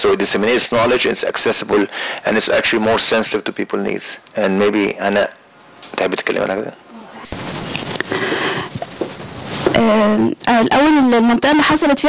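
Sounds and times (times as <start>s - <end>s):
breath noise on microphone: 7.0s - 9.8s
woman speaking: 9.7s - 12.0s.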